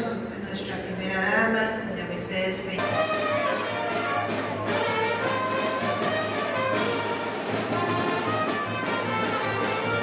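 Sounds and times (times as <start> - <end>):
brass band playing: 2.8 - 10.0.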